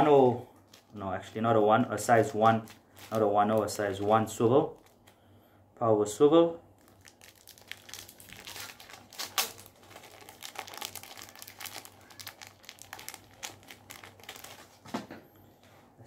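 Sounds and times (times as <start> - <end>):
plastic packet crinkling: 0.6 - 5.1, 6.7 - 14.8.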